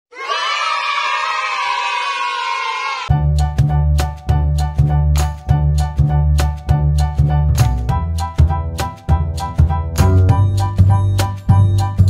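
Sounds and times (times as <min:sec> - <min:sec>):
children cheering: 0:00.1 - 0:03.1.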